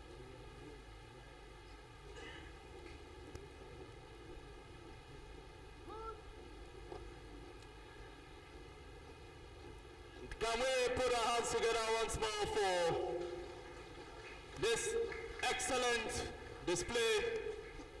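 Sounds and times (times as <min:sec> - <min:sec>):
man speaking over loudspeaker: 0:10.3 - 0:13.5, 0:14.6 - 0:17.8.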